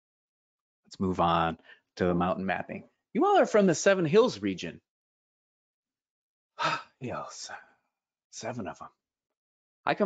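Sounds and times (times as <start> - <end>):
man sighing: 6.6 - 7.0.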